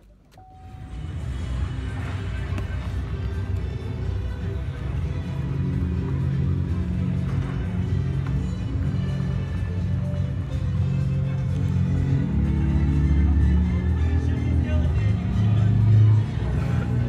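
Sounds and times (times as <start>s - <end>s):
music with deep bass line: 0.0s - 17.0s.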